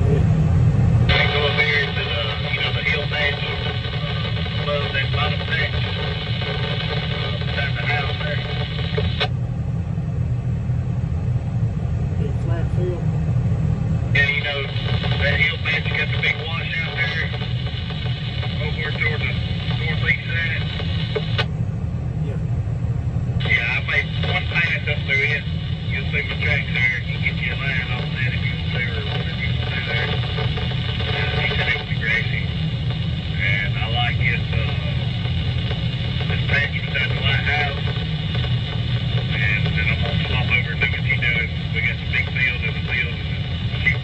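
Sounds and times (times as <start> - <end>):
engine drone inside cab: 0.0 - 44.0
voice over two-way radio: 1.1 - 9.3, 14.1 - 21.5, 23.4 - 44.0.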